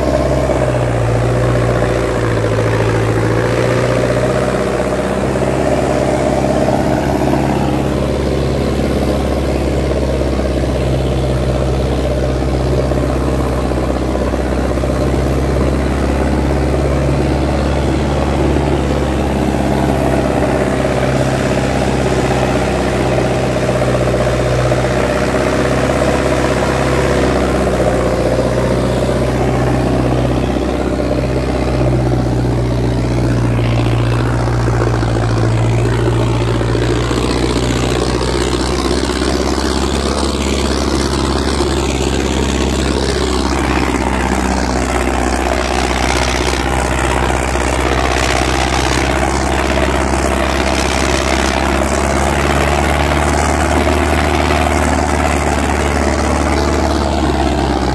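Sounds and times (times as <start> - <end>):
tractor diesel engine under load: 0.0 - 57.9.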